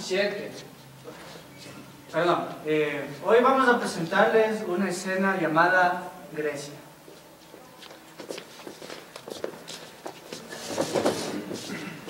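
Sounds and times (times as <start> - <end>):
footsteps on a stage floor: 7.0 - 12.0.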